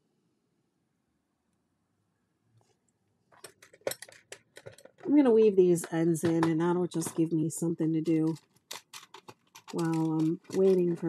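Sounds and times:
small hard objects clicking: 8.1 - 11.0.

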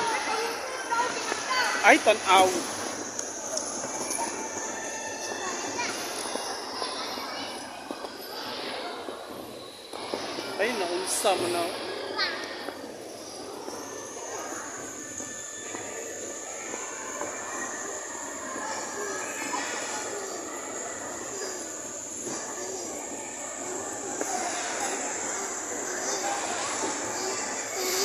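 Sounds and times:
faint voices: 0.0 - 28.0.

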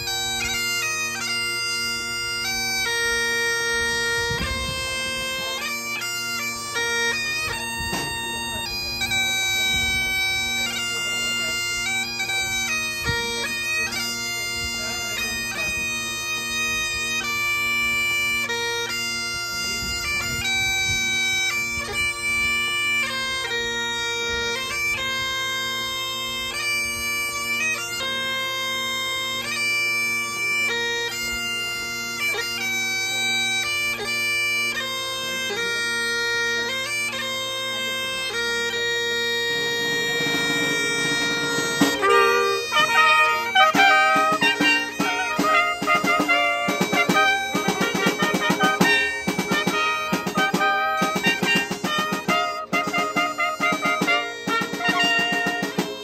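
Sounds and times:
bagpipes playing a melody: 0.0 - 56.0
trumpets playing: 39.0 - 56.0.

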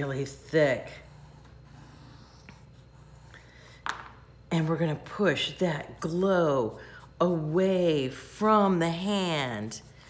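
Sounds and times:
chalk pastel rubbing on paper: 6.0 - 10.0.

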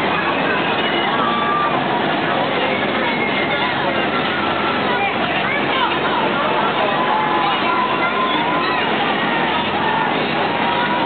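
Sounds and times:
mechanical noise from rides: 0.0 - 11.0
people chattering: 0.0 - 11.0.

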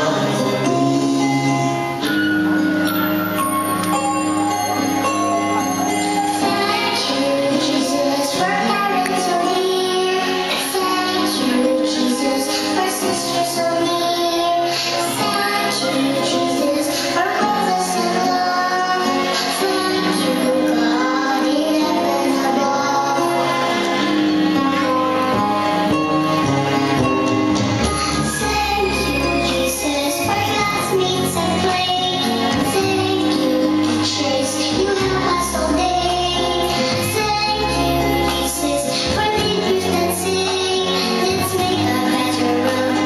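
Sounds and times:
musical accompaniment: 0.0 - 43.0
high voice singing slow song: 5.9 - 26.6.

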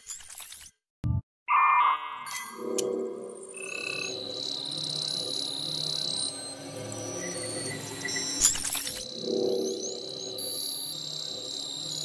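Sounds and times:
high shimmering synthesized tone: 1.5 - 8.5.

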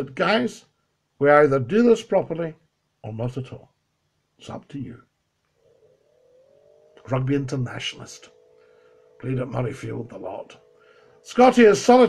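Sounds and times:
faint rising tone: 5.5 - 12.0.

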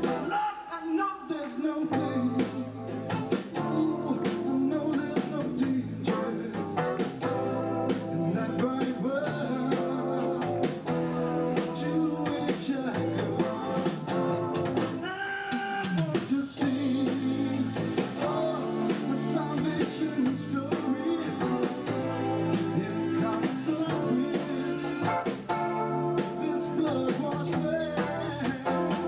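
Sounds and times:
live rock band playing: 0.0 - 0.4, 1.9 - 29.0.

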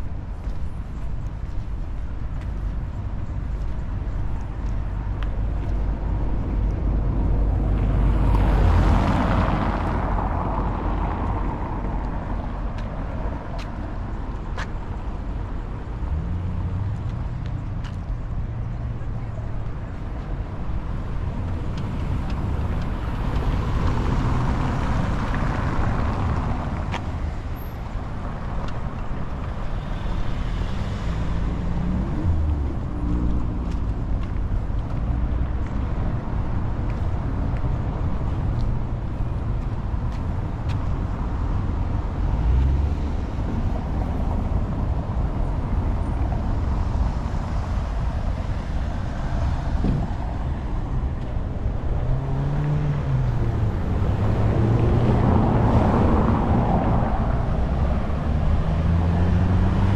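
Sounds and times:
vehicles passing: 0.0 - 59.9.

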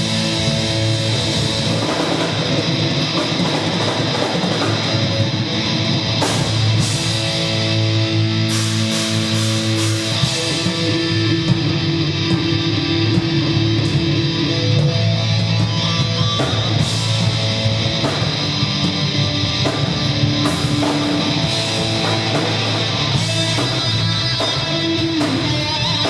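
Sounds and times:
drum kit: 0.0 - 26.0
electric guitars and bass chords: 0.0 - 26.0.

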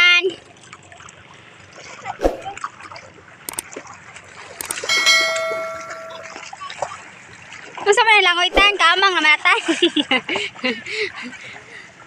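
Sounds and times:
sharp clicks: 4.6 - 5.1
bright bell ding: 4.6 - 6.6.

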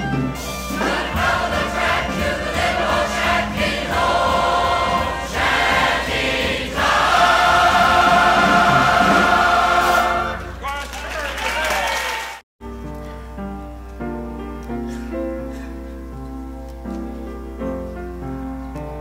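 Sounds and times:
choir singing: 0.7 - 10.5.

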